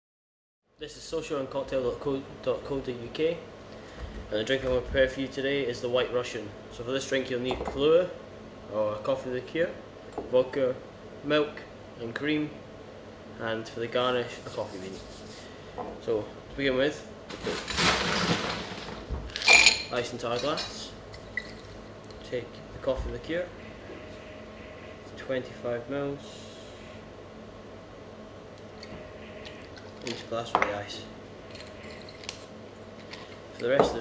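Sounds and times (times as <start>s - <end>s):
faint hum: 0.7s - 34.0s
ice cubes clattering in scoop: 17.3s - 19.6s.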